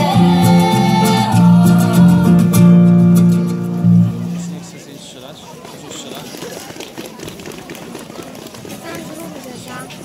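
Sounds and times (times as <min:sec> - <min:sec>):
voices chattering quietly: 0:04.1 - 0:10.0.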